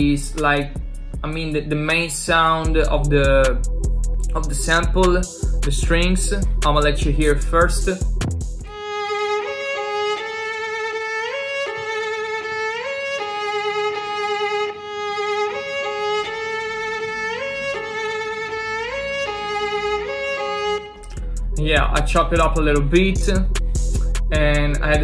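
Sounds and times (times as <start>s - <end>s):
violin slow melody: 8.6s - 25.0s.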